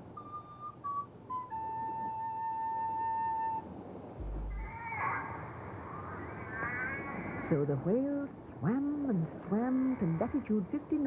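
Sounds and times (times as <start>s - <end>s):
flute music: 0.2s - 4.9s
short very low tone: 4.2s - 4.8s
warbling flute-like notes: 4.2s - 5.4s.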